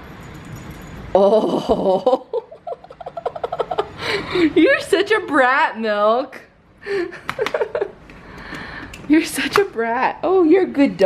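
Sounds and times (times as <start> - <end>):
woman laughing: 1.2 - 4.8, 6.8 - 8.0.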